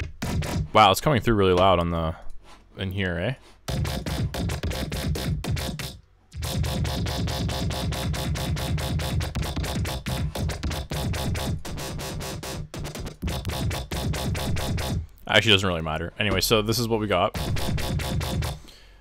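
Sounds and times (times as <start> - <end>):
pulsing synth bass: 3.7 - 15.0, 17.4 - 18.6.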